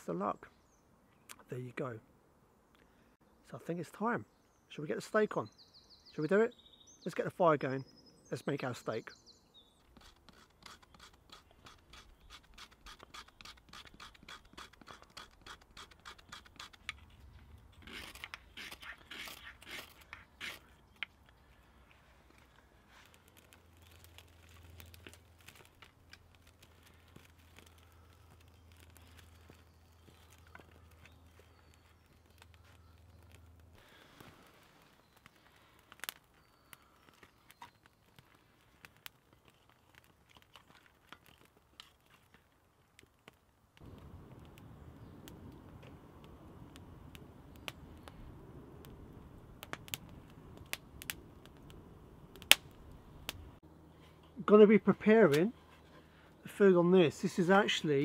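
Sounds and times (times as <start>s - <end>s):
tool scraping birch bark: 9.8s - 21.1s
twigs clicking and snapping: 9.8s - 58.0s.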